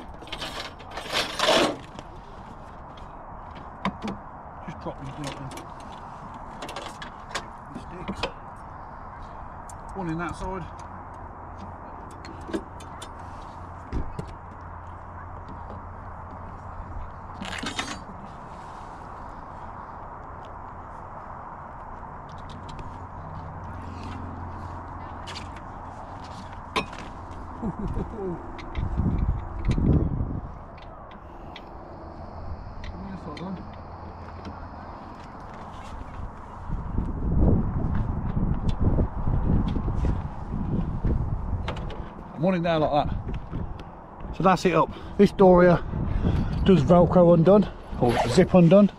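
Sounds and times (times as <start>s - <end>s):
steady low hum: 7.2s - 42.4s.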